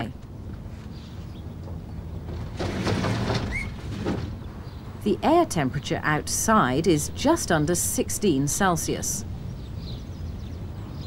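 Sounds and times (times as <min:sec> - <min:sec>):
bird chirp: 0:00.8 - 0:02.2, 0:03.5 - 0:05.0, 0:09.2 - 0:11.0.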